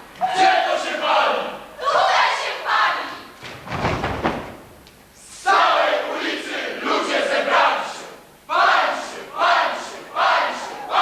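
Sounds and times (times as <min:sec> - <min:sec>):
young voices shouting in unison: 0:00.2 - 0:03.2, 0:08.5 - 0:11.0.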